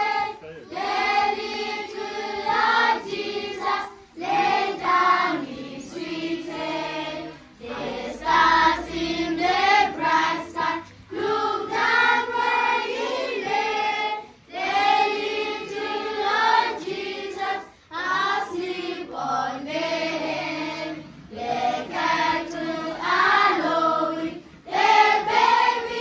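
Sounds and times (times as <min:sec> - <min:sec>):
children singing together: 0:00.0 - 0:26.0.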